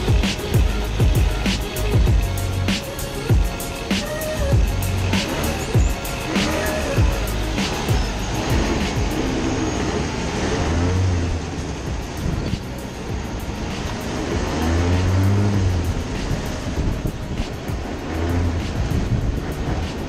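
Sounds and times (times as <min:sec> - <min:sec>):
go-kart engine revving: 0:00.0 - 0:20.0.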